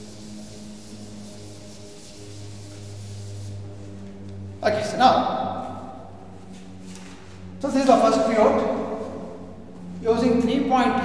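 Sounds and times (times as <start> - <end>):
duster rubbing on blackboard: 0.0 - 4.2
low steady hum: 0.0 - 11.0.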